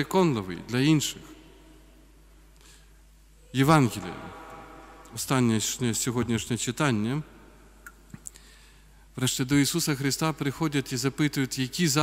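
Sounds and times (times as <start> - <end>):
man speaking: 0.0 - 1.4, 3.4 - 7.5, 9.2 - 12.0.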